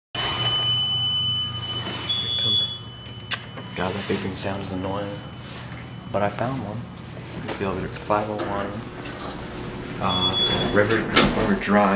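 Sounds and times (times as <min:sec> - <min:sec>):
elevator chime: 0:00.2 - 0:11.9
low steady hum: 0:00.2 - 0:11.9.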